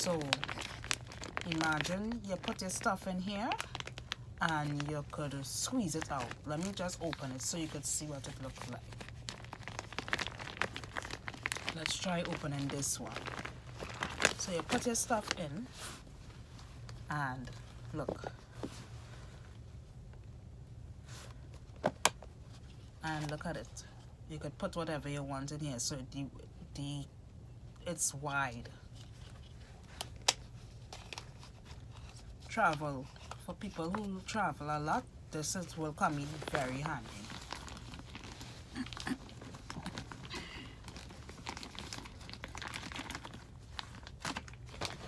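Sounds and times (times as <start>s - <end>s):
plastic bag crinkling: 0.0s - 15.9s, 35.6s - 45.0s
plastic rustle: 0.0s - 19.4s, 35.6s - 45.0s.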